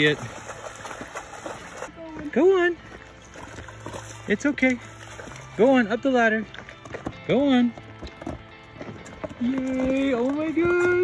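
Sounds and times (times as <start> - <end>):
hooves splashing in shallow water: 0.0 - 11.0.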